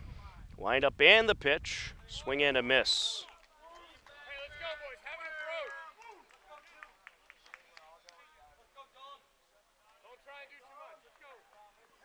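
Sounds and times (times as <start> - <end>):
faint voices talking and calling: 1.7 - 12.0.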